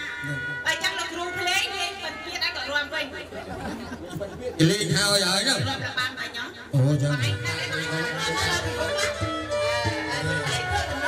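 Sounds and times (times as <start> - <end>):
man speaking: 4.1 - 5.7.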